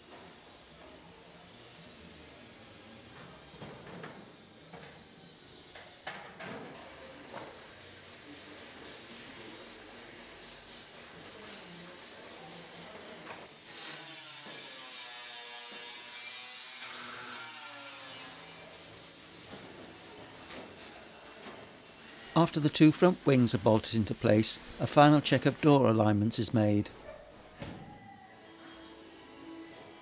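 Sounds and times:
steady hiss: 22.3 - 26.9.

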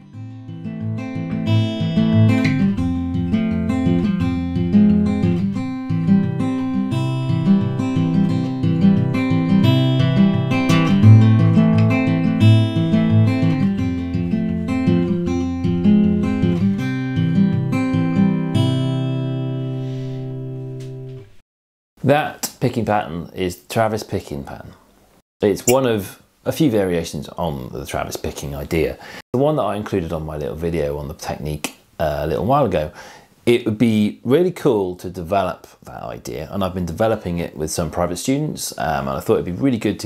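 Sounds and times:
fingerpicked acoustic guitar: 0.0 - 21.2.

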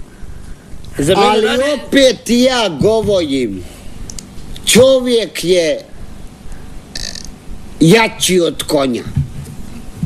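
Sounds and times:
man speaking: 1.0 - 3.8, 4.6 - 6.0, 7.8 - 9.2.

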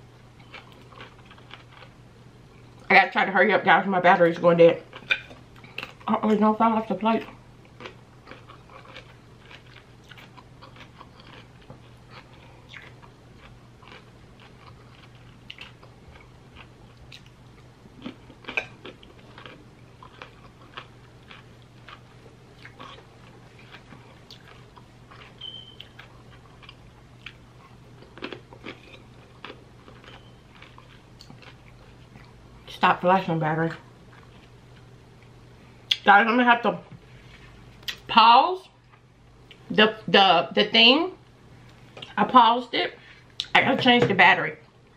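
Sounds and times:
faint low hum: 0.0 - 44.9
chewing crunchy cucumber: 0.3 - 2.0, 7.2 - 32.4.

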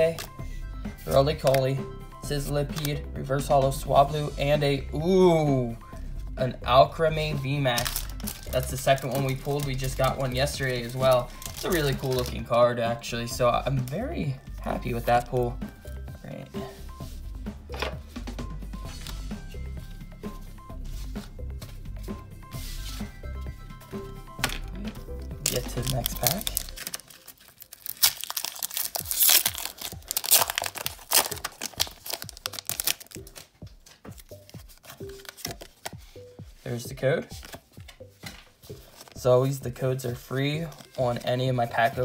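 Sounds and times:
foil wrapper tearing and crinkling: 7.7 - 12.4, 25.4 - 33.5, 34.1 - 36.0.

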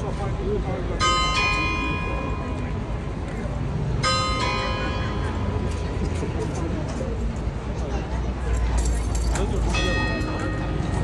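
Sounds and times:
crowd murmuring: 0.0 - 11.0.

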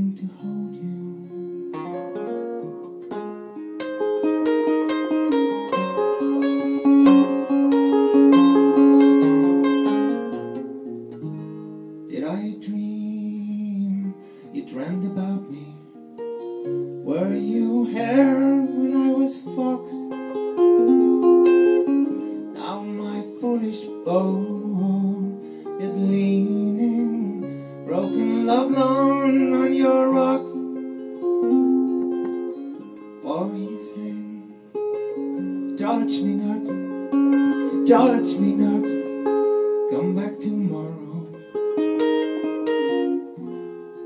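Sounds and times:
man singing: 0.0 - 1.5, 12.1 - 16.0, 17.0 - 20.2, 22.5 - 30.7, 33.2 - 34.8, 35.7 - 41.5
acoustic guitar played slowly: 0.0 - 44.0.

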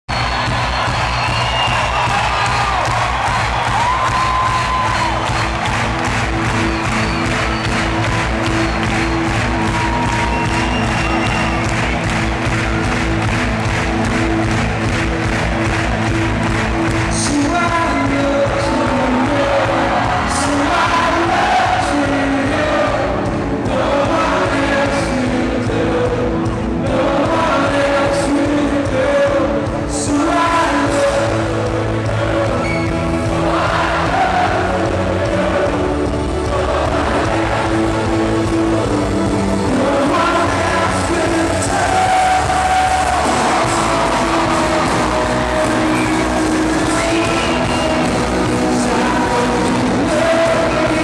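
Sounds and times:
crowd cheering and whooping: 0.1 - 23.0, 32.1 - 51.0
live rock band playing: 0.1 - 51.0
voices singing: 17.3 - 51.0.

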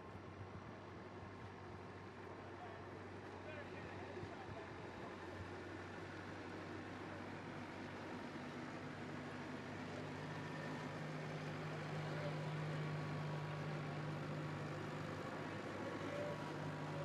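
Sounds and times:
tractor engine running: 5.3 - 17.0.

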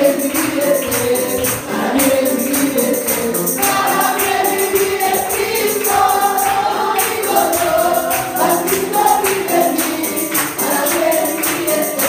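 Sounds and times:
jingling percussion beat: 0.0 - 12.0
person singing worship song: 0.0 - 12.0
voices singing along: 0.0 - 12.0.

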